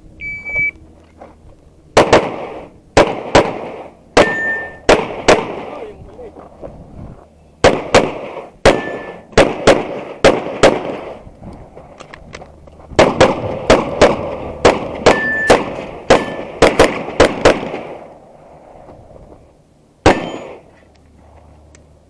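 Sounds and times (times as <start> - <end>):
metallic ring of steel target: 4.2 - 4.9, 8.7 - 9.4, 15.0 - 16.6, 20.1 - 20.7
handgun shots: 20.1 - 20.6.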